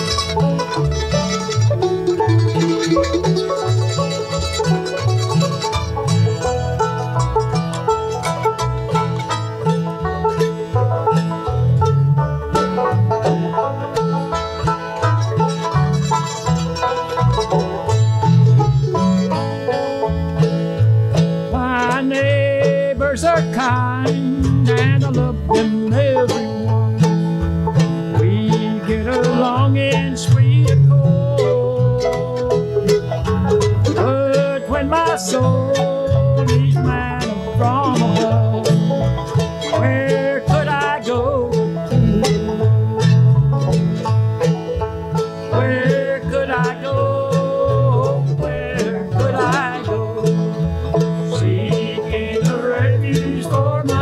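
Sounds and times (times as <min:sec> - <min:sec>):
acoustic guitar: 0:00.0 - 0:54.0
banjo picking: 0:00.0 - 0:54.0
mandolin: 0:00.0 - 0:54.0
plucked upright bass: 0:00.0 - 0:54.0.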